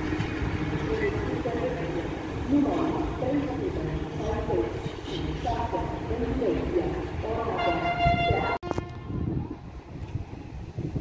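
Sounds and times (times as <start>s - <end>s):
train rumbling: 0.0s - 11.0s
wind on microphone: 6.8s - 11.0s
locomotive horn blast: 7.6s - 9.4s.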